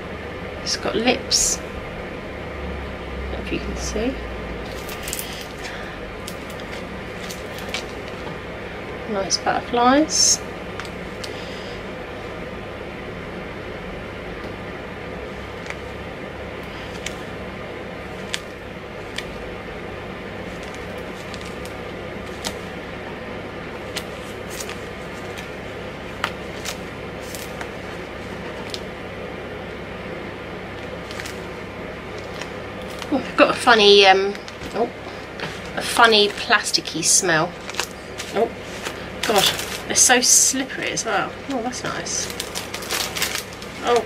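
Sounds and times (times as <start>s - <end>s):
background hiss and hum: 0.0s - 44.0s.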